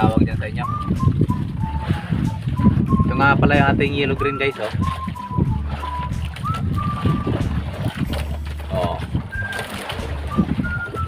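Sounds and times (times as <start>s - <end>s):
boat motor droning: 0.0s - 11.0s
water splashing: 0.0s - 11.0s.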